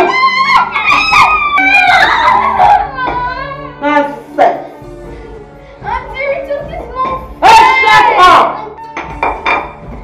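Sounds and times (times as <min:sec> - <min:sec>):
children howling: 0:00.0 - 0:03.7.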